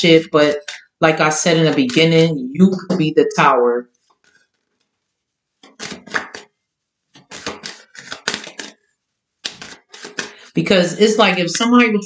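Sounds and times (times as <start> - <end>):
cards being shuffled: 5.6 - 6.5, 7.2 - 8.8, 9.4 - 10.5.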